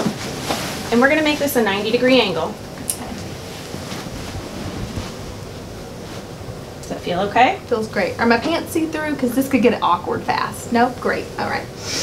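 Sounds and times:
soft rustles: 0.0s - 7.0s
microphone hiss: 0.0s - 12.0s
woman speaking: 0.9s - 3.2s, 6.8s - 11.8s.

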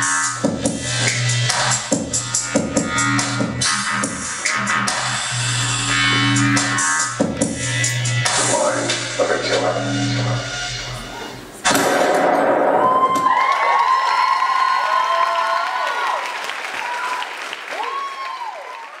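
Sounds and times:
electronic music with heavy bass: 0.0s - 11.7s
audience applause and cheering: 12.7s - 19.0s.

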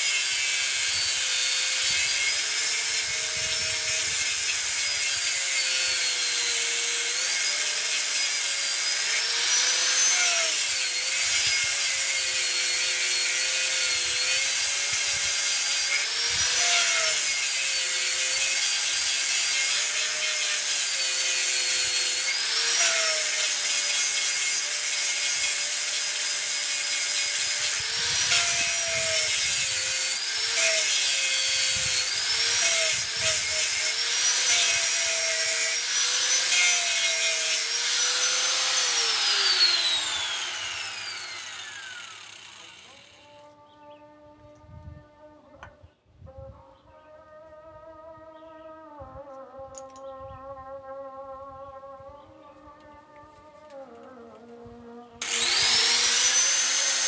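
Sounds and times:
angle grinder grinding wood: 0.0s - 43.6s, 53.3s - 57.0s.

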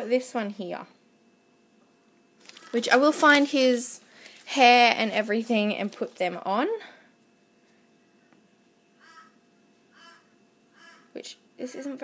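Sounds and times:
short pitched animal calls: 9.0s - 11.2s.

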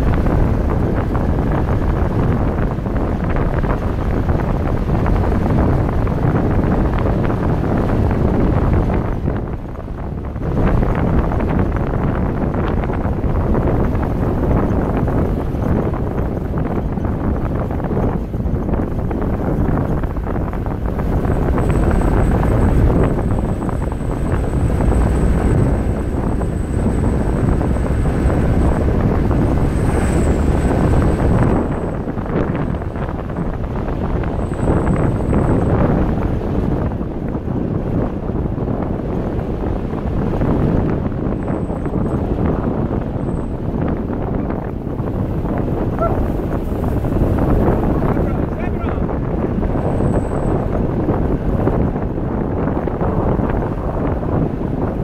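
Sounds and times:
vehicle engine and tyre noise: 0.0s - 55.0s
wind buffeting microphone: 0.0s - 55.0s.

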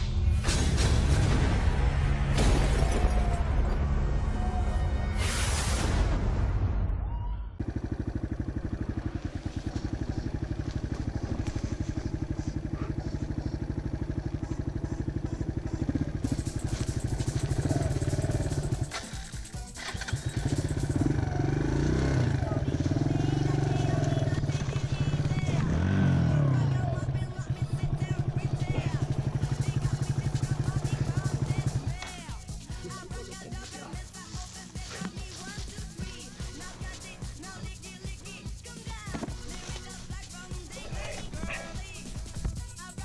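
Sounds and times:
motorcycle engine running: 7.6s - 43.0s.

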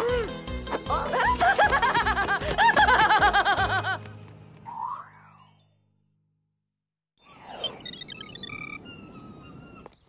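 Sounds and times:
whistling bird calls: 7.6s - 10.0s.

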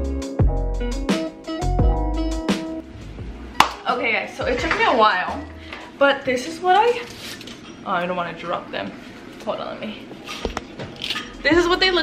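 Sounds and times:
woman's voice: 3.8s - 7.1s, 7.8s - 10.1s, 11.4s - 12.0s.

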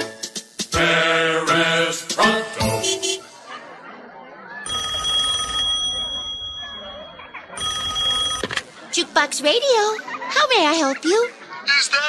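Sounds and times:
telephone ringing: 4.6s - 9.0s.

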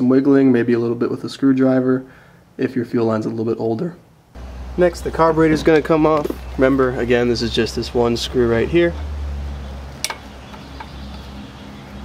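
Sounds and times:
low steady hum: 4.1s - 12.0s
sharp metallic click: 10.0s - 11.2s.

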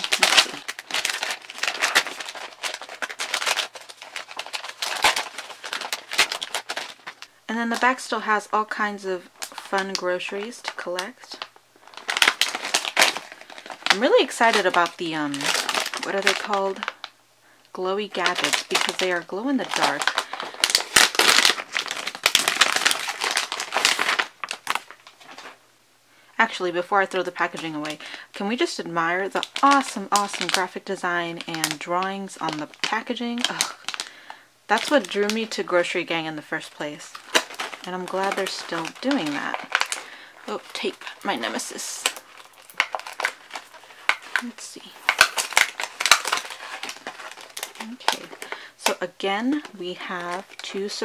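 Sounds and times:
plastic packet crinkling: 0.0s - 25.6s, 26.4s - 51.0s.

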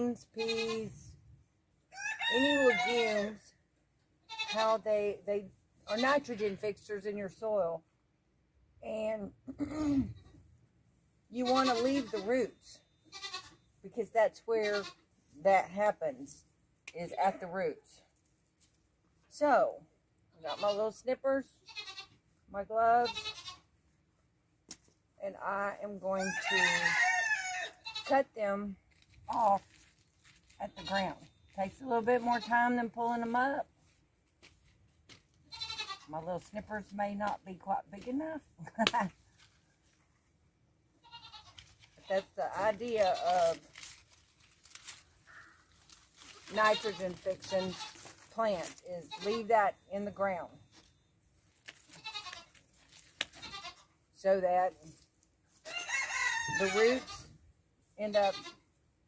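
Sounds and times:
farm animal bleating: 0.0s - 1.2s, 2.0s - 3.4s, 4.2s - 5.2s, 5.8s - 6.6s, 11.3s - 13.7s, 14.5s - 16.0s, 20.4s - 23.7s, 25.2s - 33.7s, 35.4s - 36.9s, 41.0s - 44.0s, 45.3s - 50.6s, 51.7s - 55.0s, 55.6s - 57.4s, 58.0s - 58.7s.

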